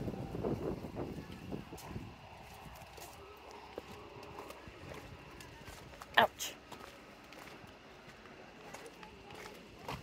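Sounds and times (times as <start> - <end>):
footsteps on rock: 3.8 - 10.0.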